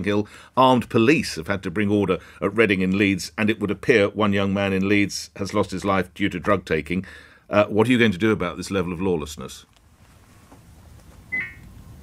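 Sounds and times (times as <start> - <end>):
short electronic beep: 11.3 - 11.6.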